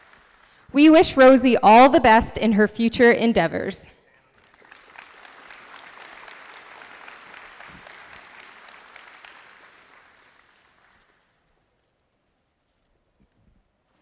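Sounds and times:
audience applause: 0.0 - 0.7, 4.2 - 11.4.

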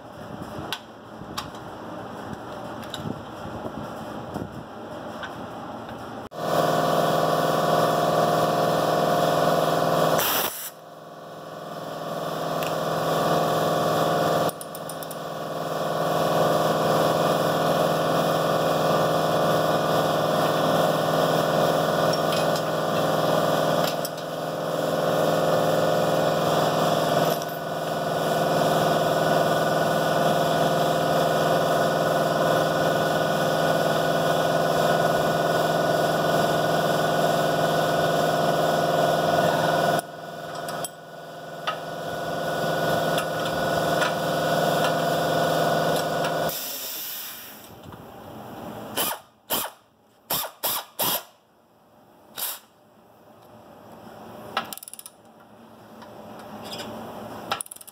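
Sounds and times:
pneumatic air ratchet whirring: 10.2 - 10.8, 48.9 - 51.4, 52.3 - 52.7, 57.6 - 57.9.

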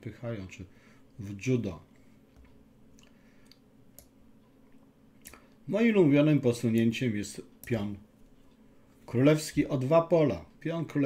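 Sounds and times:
low steady hum: 0.0 - 11.0
soft faint clicks: 2.3 - 5.5.

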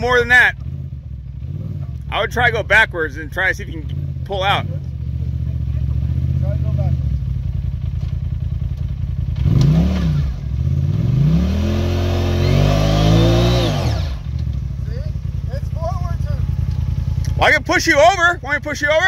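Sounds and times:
vehicle engine idling and revving: 0.0 - 19.0.

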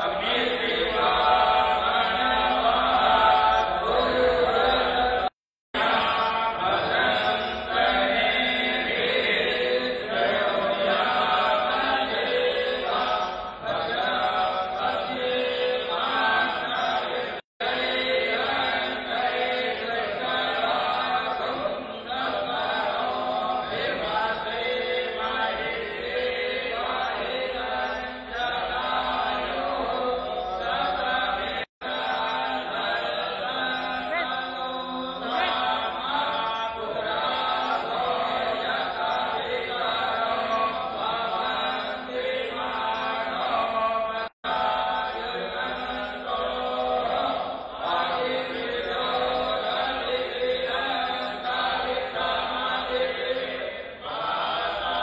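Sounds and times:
man chanting into a microphone: 0.0 - 55.0.

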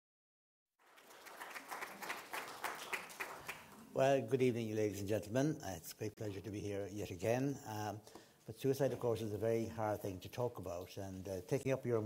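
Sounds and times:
audience applauding: 0.8 - 3.9.

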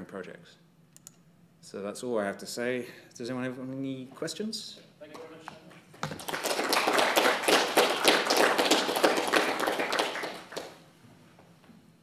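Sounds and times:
audience applause: 6.1 - 10.8.

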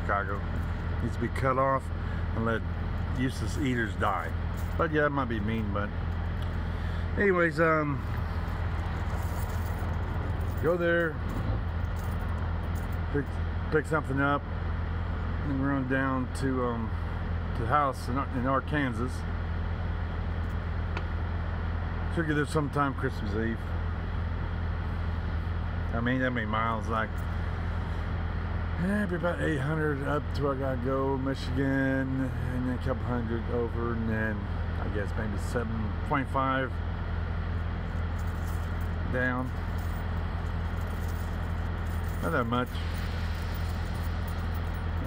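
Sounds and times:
diesel truck engines idling: 0.0 - 45.0.

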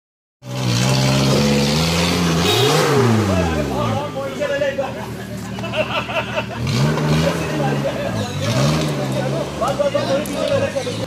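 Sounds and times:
engine revving under load: 0.4 - 4.1, 6.3 - 11.0.

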